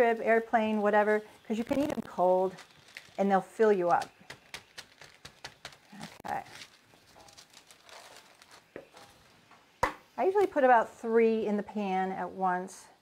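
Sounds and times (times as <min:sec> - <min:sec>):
parchment paper crinkling: 0:00.6 - 0:09.5.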